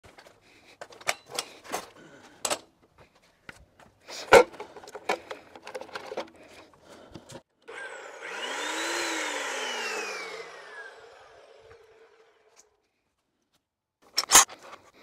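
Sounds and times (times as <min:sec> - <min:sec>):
chop saw motor whine: 0:07.6 - 0:12.7.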